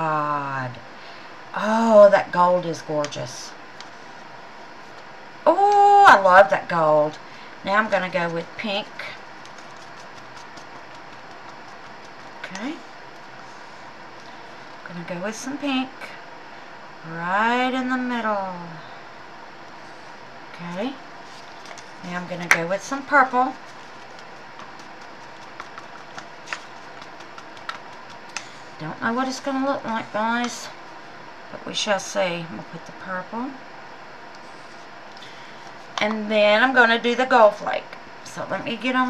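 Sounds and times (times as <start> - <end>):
low room hum: 0.0 - 39.0
gloved hands tapping plastic cup: 24.0 - 28.5.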